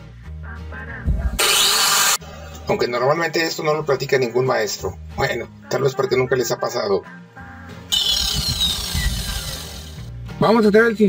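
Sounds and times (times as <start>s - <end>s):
angle grinder grinding concrete: 1.4s - 2.2s, 7.9s - 10.1s.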